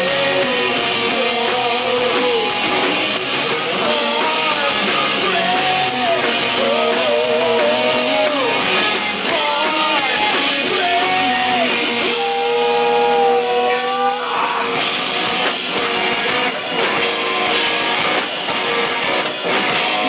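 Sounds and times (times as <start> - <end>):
man singing: 0.0 - 14.8
drums: 0.0 - 20.0
electric guitars: 0.0 - 20.0.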